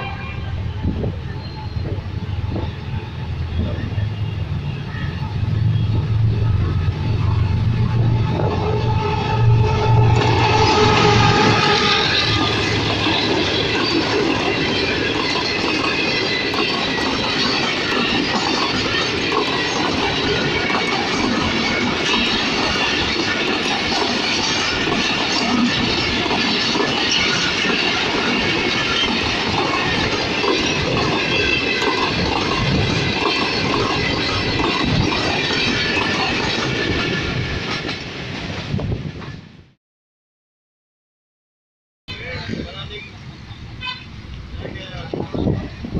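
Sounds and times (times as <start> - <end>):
train wheels rolling on rails: 0.0 - 39.7
diesel locomotive passing: 0.0 - 39.8, 42.1 - 45.9.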